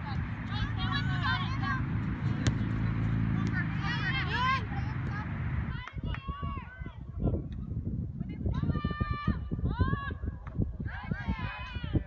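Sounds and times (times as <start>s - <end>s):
steady low rumble: 0.0s - 10.8s.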